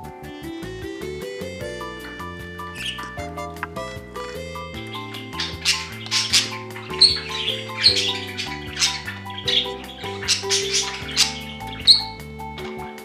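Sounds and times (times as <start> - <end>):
light background music: 0.0 - 13.0
budgerigars chirping: 0.3 - 13.0.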